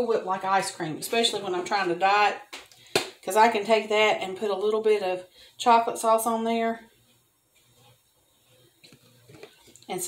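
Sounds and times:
woman speaking: 0.0s - 2.5s, 3.2s - 6.9s.

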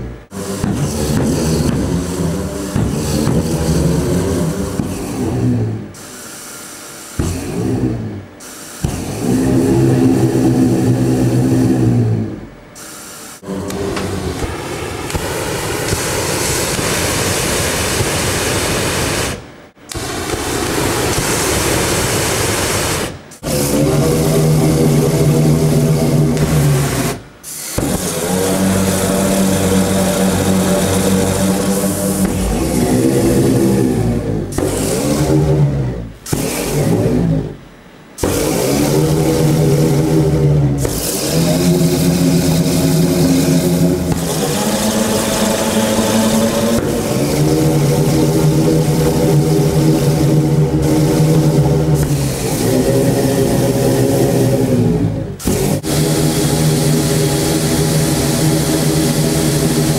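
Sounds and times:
burning gas hiss: 0.0s - 37.6s, 38.2s - 59.9s
flame organ low notes: 13.4s - 59.9s.

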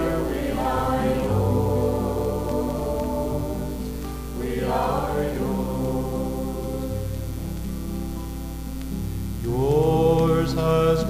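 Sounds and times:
folk worship song: 0.0s - 11.0s.

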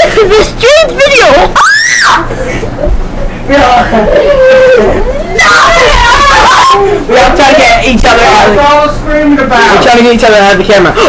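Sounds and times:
child screaming: 1.6s - 2.3s, 4.2s - 6.8s.

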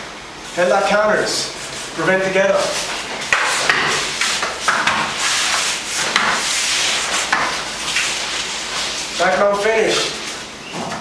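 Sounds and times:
fabric rustling and rubbing: 1.6s - 10.5s.

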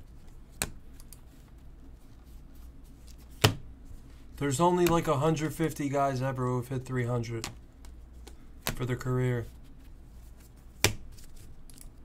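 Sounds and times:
low steady hum: 0.0s - 12.0s
cards flipped through by hand: 9.6s - 11.9s.

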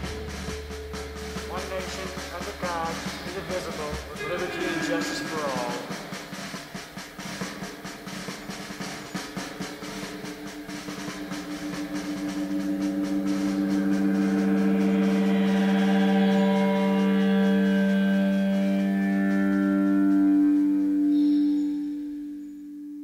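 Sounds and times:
rapid drumming: 0.0s - 20.6s
sustained rock chord: 0.0s - 22.6s.

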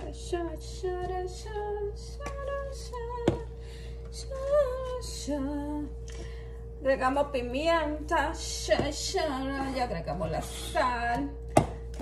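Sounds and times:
woman singing: 0.0s - 6.0s, 6.8s - 11.4s
steady hum: 0.0s - 12.0s.

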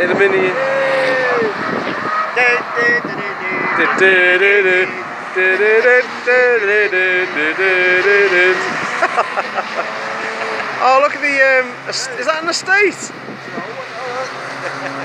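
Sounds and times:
cars going by: 0.0s - 15.0s
man singing: 2.4s - 8.7s.

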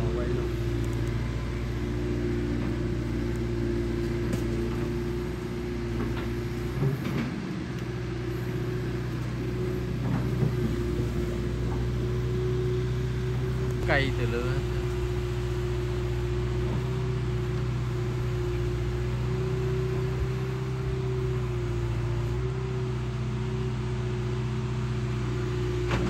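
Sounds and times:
excavator engine running: 0.0s - 26.0s.

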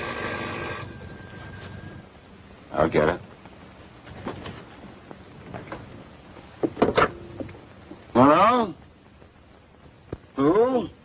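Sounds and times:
telephone bell ringing: 0.0s - 2.1s.

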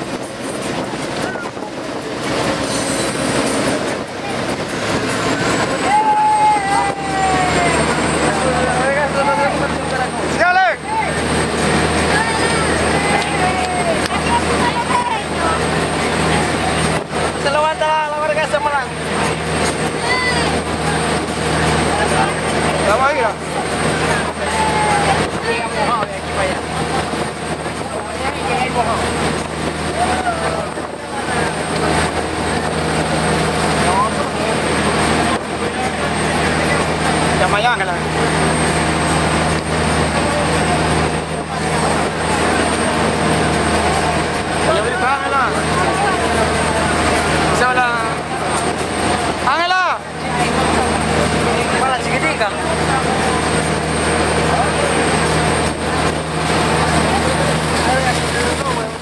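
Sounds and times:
boat engines running: 0.0s - 59.0s
passengers talking: 0.0s - 59.0s
wind rush on microphone: 0.0s - 59.0s.

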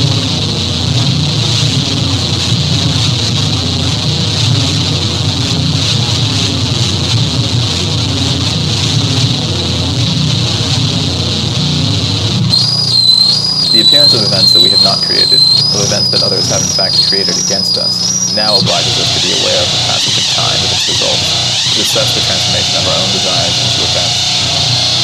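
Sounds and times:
thin high whistling tone: 12.5s - 25.0s
warbling high tone: 12.5s - 25.0s
dense wash of noise: 15.2s - 25.0s.

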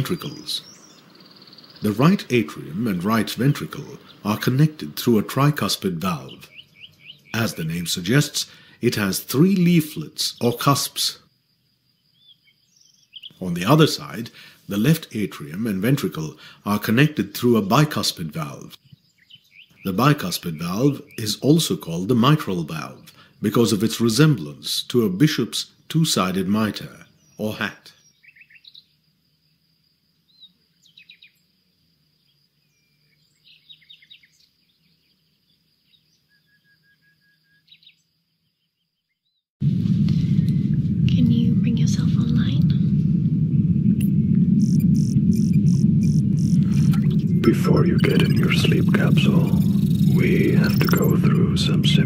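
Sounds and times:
faint birds chirping: 0.0s - 39.5s, 40.2s - 52.0s
faint steady high tone: 43.9s - 52.0s.

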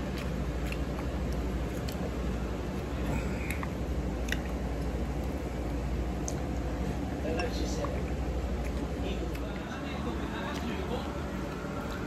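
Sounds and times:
restaurant room hum: 0.0s - 12.0s.

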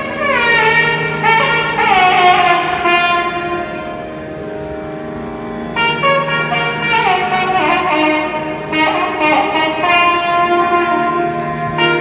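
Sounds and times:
double-reed wind instrument: 0.0s - 12.0s
steady drone: 0.0s - 12.0s.

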